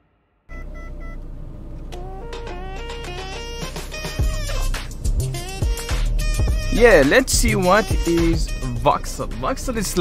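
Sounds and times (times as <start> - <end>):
car interior hum: 0.5 - 10.0.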